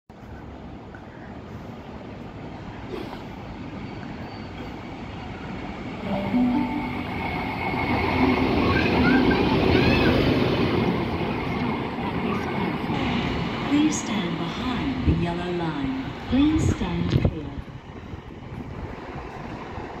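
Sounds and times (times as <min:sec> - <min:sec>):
electric train rumbling: 0:00.1 - 0:20.0.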